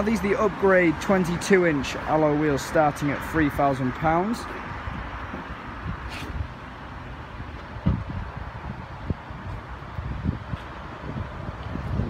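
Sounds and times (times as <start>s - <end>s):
wind buffeting microphone: 4.7s - 12.0s.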